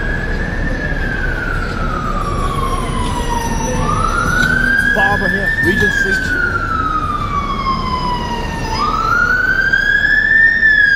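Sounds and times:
emergency vehicle siren wailing: 0:00.0 - 0:10.9
low rumble of street traffic: 0:00.0 - 0:10.9.

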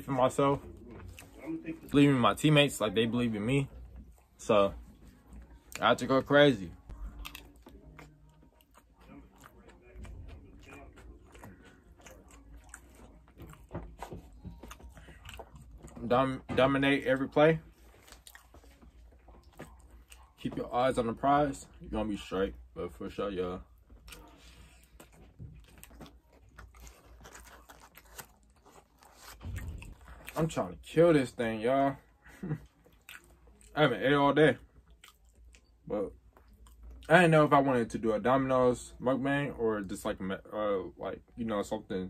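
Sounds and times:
close-up chewing: 0:00.0 - 0:02.0, 0:06.7 - 0:21.9, 0:23.6 - 0:30.9, 0:32.1 - 0:34.0, 0:34.6 - 0:37.2.

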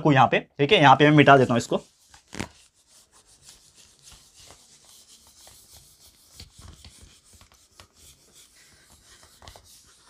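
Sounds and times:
eraser rubbing on whiteboard: 0:01.2 - 0:10.0.

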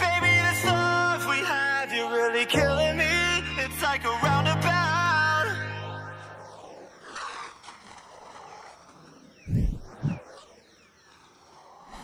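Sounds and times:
electronic pop music: 0:00.0 - 0:06.3.

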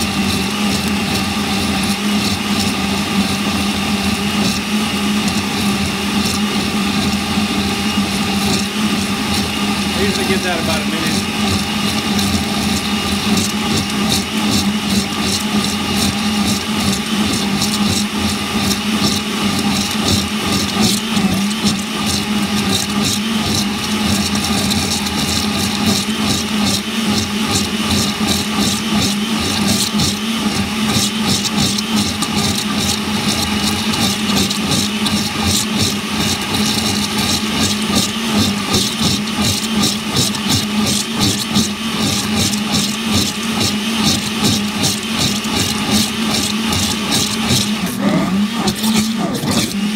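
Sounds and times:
blender running on high speed: 0:00.0 - 0:49.9.

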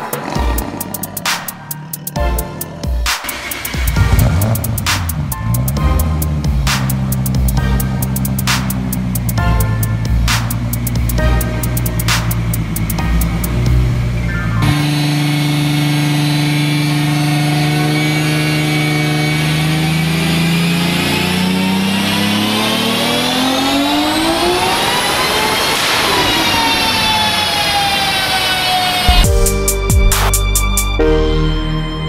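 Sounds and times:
hip-hop music: 0:00.0 - 0:15.0, 0:29.1 - 0:32.0
car engine revving: 0:00.0 - 0:31.0.

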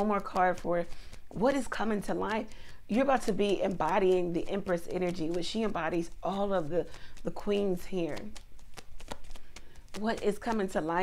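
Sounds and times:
cards being shuffled by hand: 0:00.0 - 0:11.0.

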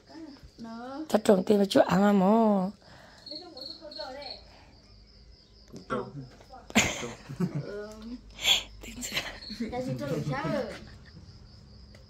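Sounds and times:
faint high-pitched insect chirping: 0:00.0 - 0:12.0.

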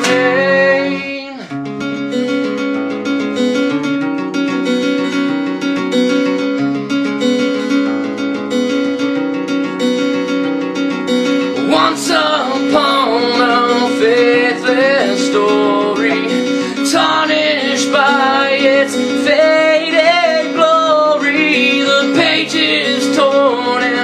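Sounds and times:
man singing: 0:00.0 - 0:01.6, 0:11.6 - 0:24.0
strummed acoustic guitar: 0:00.0 - 0:24.0.

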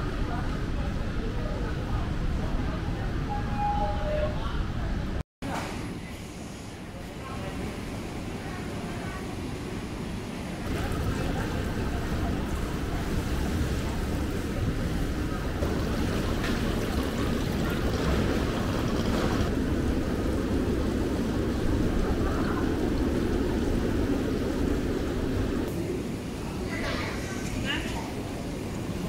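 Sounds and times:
water running and splashing in tanks: 0:10.6 - 0:25.7.

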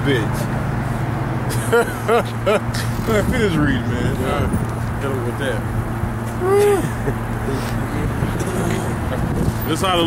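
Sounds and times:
man laughing: 0:01.5 - 0:03.4, 0:06.4 - 0:09.3.

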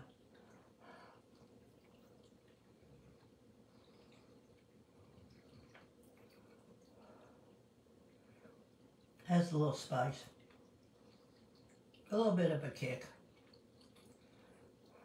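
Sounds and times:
wet mouth clicks from chewing: 0:10.4 - 0:12.1, 0:13.2 - 0:14.9.

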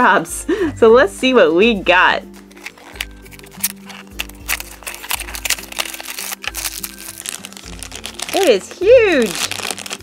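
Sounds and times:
background music: 0:00.0 - 0:10.0
plastic bag crinkling: 0:02.4 - 0:10.0
cardboard box opened by hand: 0:02.5 - 0:08.5.

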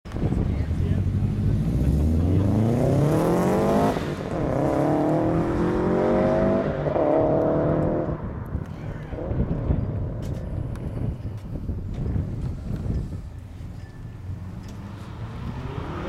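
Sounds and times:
car engine accelerating: 0:00.8 - 0:11.2, 0:14.3 - 0:16.0.

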